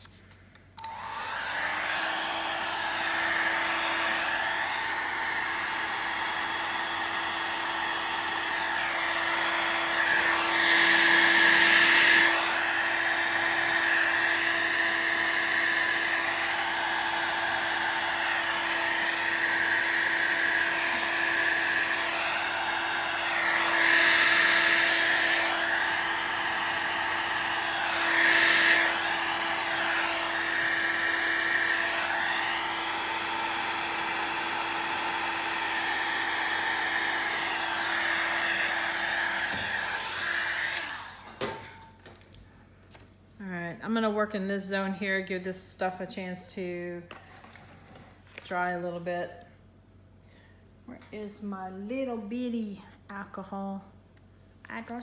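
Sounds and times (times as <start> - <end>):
hot-air blower motor whine: 0.8 - 41.8.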